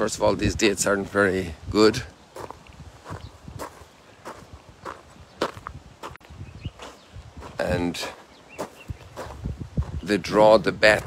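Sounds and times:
footsteps on sandy ground: 0.0 - 11.0.

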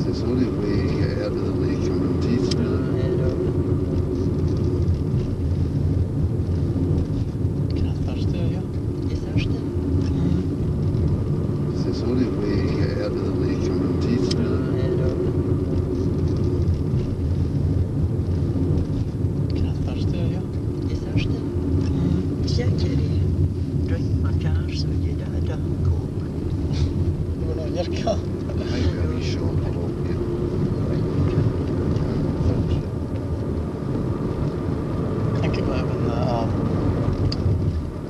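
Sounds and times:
car engine rumble: 0.0 - 38.0
road noise: 0.0 - 38.0.

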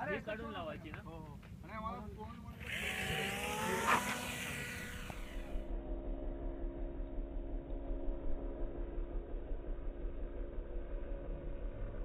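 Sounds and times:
model plane motor whining: 2.6 - 7.1.

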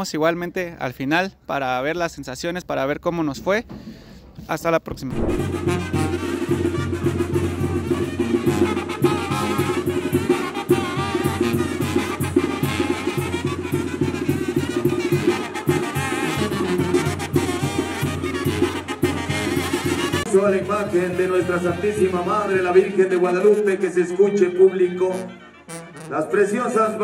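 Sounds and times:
drums: 3.6 - 22.3
trumpets: 5.1 - 27.0
tuba: 5.1 - 27.0.

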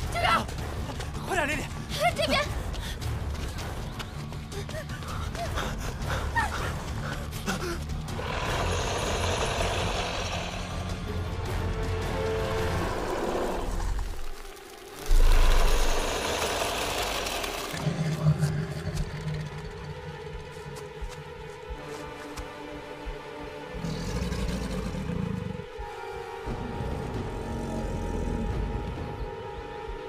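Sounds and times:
suspenseful film score: 0.0 - 30.0.

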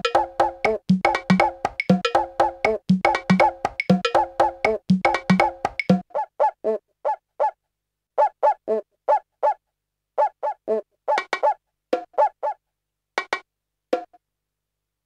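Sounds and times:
sampled drum pattern: 0.0 - 6.1, 13.2 - 13.4.

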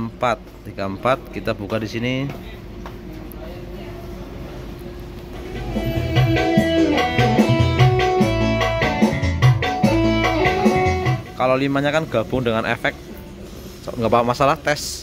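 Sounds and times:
recorded music over loudspeakers: 5.3 - 11.7.

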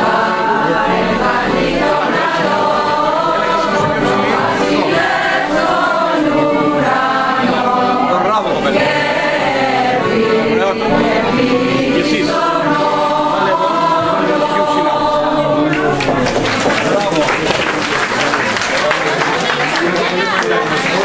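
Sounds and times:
group of voices singing: 0.0 - 17.2.

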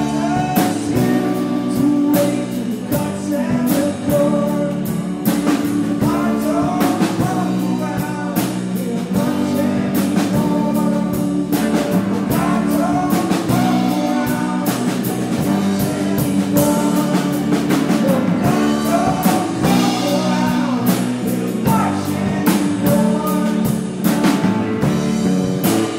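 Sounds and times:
person singing: 0.0 - 24.9
guitars strummed: 0.0 - 25.9
drum hits: 11.6 - 25.9.

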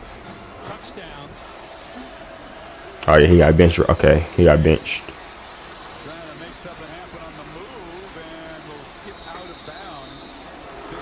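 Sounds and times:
stadium crowd noise: 0.0 - 11.0
commentator talking: 3.0 - 5.1.

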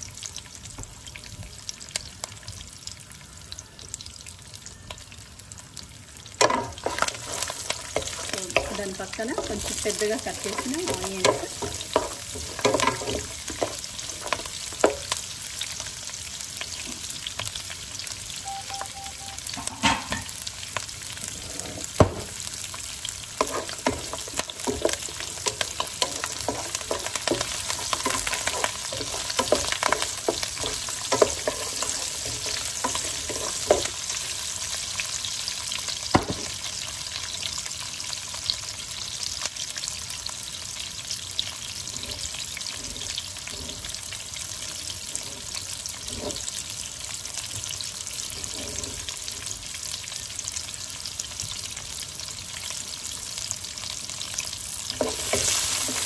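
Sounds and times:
food sizzling in oil: 0.0 - 56.0
wooden spatula scraping pan: 6.5 - 15.0, 21.2 - 22.4, 23.4 - 34.0, 41.8 - 46.6, 48.2 - 49.4, 55.0 - 56.0.

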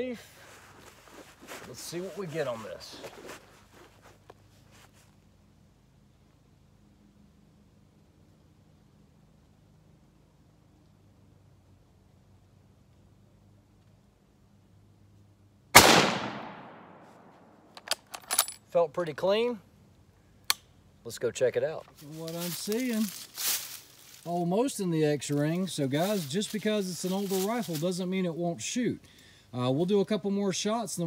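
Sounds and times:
rifle shot: 15.8 - 17.4.

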